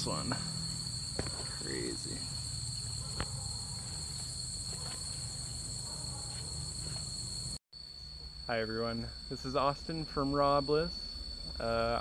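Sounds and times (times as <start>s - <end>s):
insects chorus: 0.0s - 12.0s.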